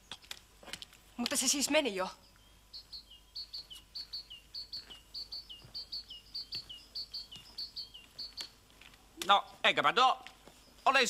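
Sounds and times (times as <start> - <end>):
small songbird chirping: 1.2 - 11.0.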